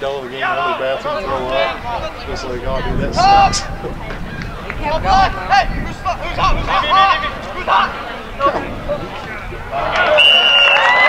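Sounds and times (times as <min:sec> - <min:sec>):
faint voices: 0:00.0 - 0:11.0
outdoor background noise: 0:00.0 - 0:11.0.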